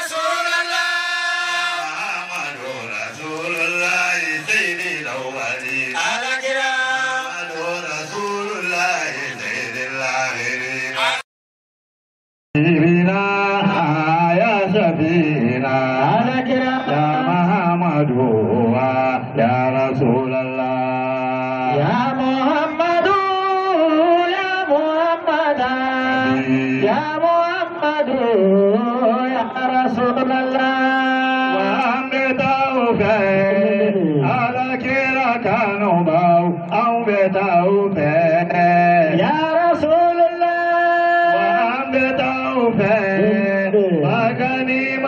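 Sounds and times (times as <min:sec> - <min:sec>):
man chanting into a microphone: 0:00.0 - 0:11.2, 0:12.6 - 0:45.0.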